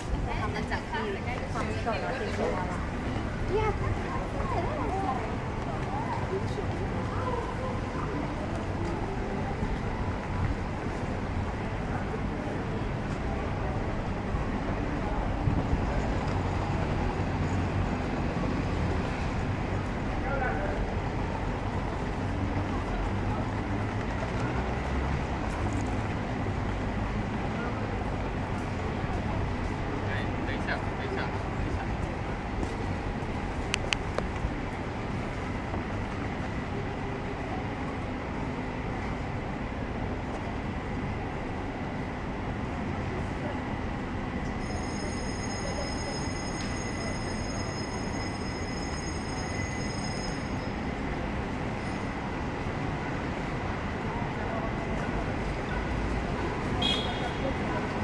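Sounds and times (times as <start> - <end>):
faint voices: 0.0 - 58.0
low street rumble: 0.0 - 58.0.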